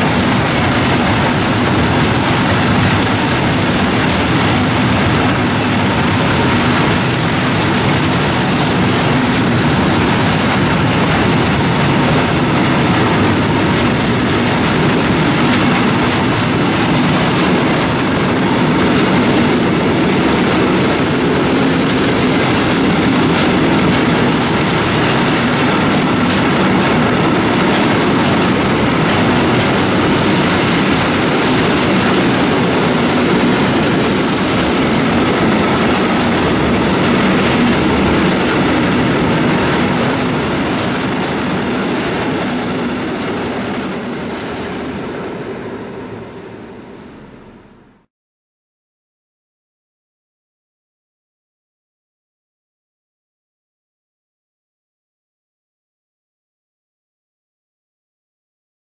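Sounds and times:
wheel clatter over rail joints: 0.0 - 46.0
freight train rolling past: 0.0 - 48.0.

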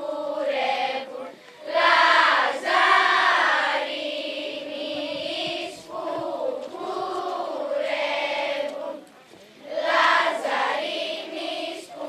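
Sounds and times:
girls singing together: 0.0 - 9.0, 9.6 - 12.0.

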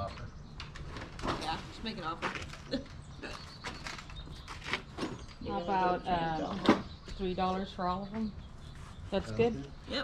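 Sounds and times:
clicks and rustles of goods handled: 0.1 - 5.5.

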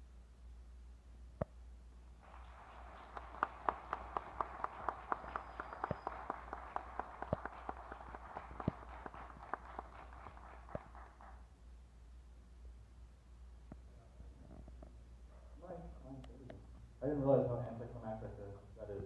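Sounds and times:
audience applauding: 2.2 - 11.4
loud close claps: 2.2 - 11.4.

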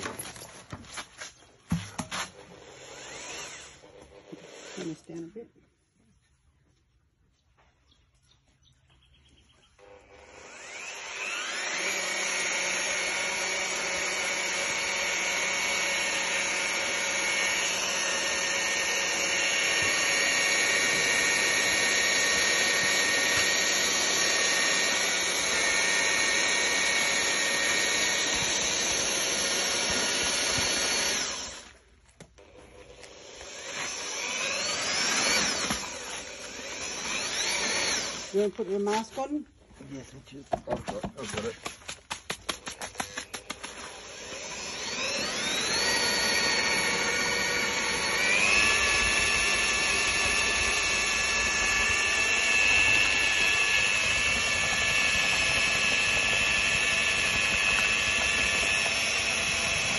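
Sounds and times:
electric paddle mixer churning: 2.2 - 5.3, 9.8 - 39.1, 42.5 - 59.9.

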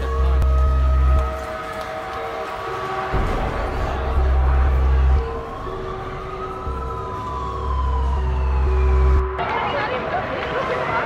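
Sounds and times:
emergency siren wailing: 0.0 - 11.0
higher siren tone sliding downward: 3.4 - 9.4.

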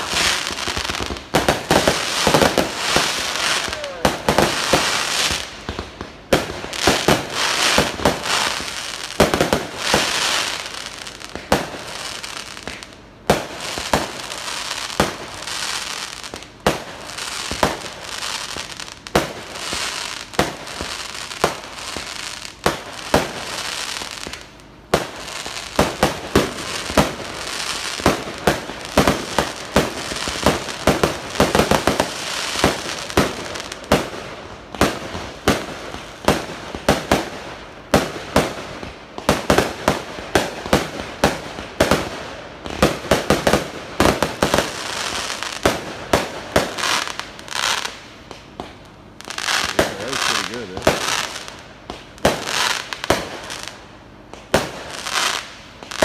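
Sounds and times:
fireworks bangs: 0.0 - 56.0
fireworks crackling: 0.0 - 56.0.

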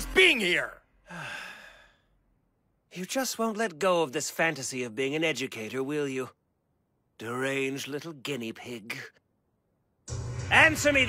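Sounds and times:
man sighing: 1.0 - 2.1.

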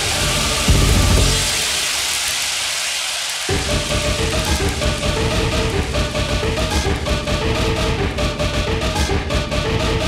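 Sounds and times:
bass: 0.0 - 1.8, 3.5 - 10.0
hardcore dj mix: 0.0 - 2.0, 3.5 - 10.0
loud wash of noise: 0.0 - 7.1.

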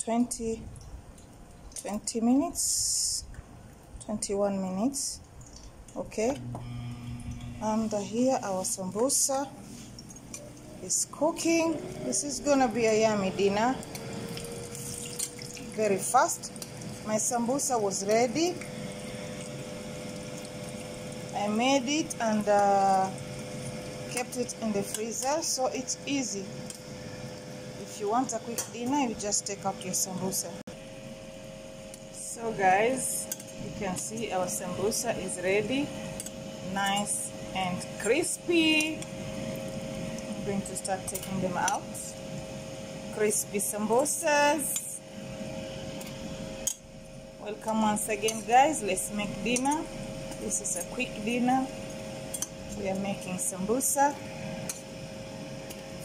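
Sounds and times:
steady hum: 0.0 - 56.0
oil sizzling and bubbling: 5.2 - 30.1, 30.7 - 56.0
oil sizzling in a frying pan: 13.9 - 15.8.

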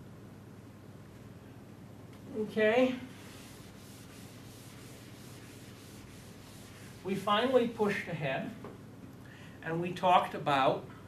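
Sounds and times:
eraser wiping across chalkboard: 3.0 - 7.8.

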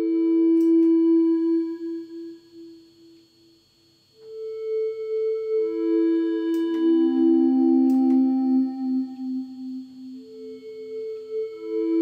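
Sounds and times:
sine-like synth tones: 0.0 - 12.0.

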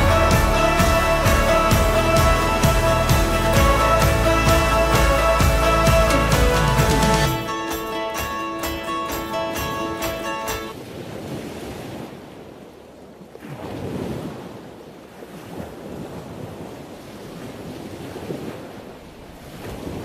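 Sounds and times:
music track: 0.0 - 10.7.

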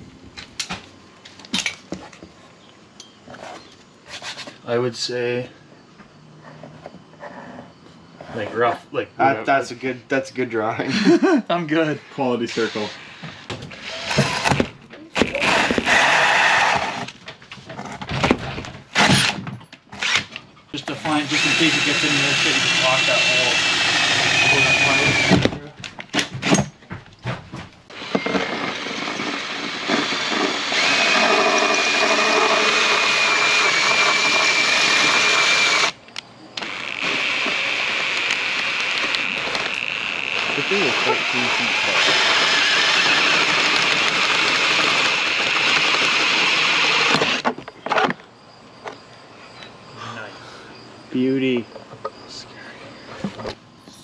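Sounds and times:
drill hole saw cutting metal: 12.3 - 14.6, 15.3 - 17.1, 20.0 - 25.5, 27.9 - 36.0, 36.6 - 47.4.

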